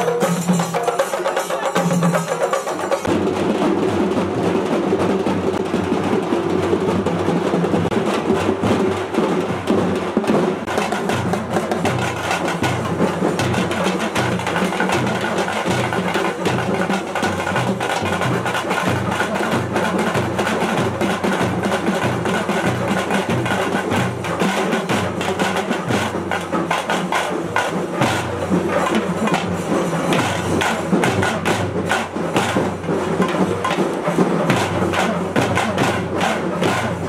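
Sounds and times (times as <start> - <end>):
steady low drum beat: 0.0 - 37.0
fast drum stick strokes: 10.6 - 37.0.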